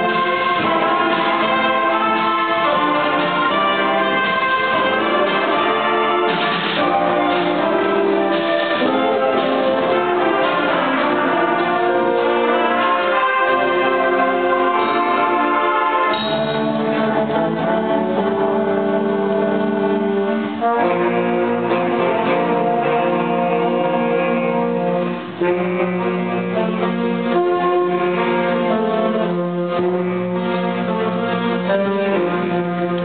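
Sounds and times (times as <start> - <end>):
concert band playing chords: 0.0 - 33.0.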